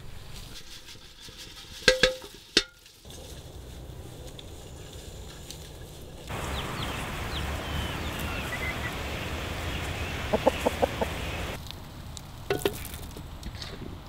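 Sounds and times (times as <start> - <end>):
chicken clucking: 6.3 - 11.6
faint high chirps: 6.3 - 11.6.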